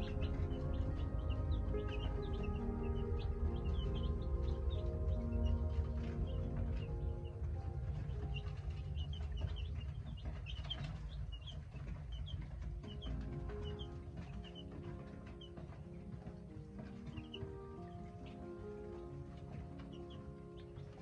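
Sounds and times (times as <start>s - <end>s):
baby chicks peeping: 0.0s - 21.0s
soft background music: 0.0s - 21.0s.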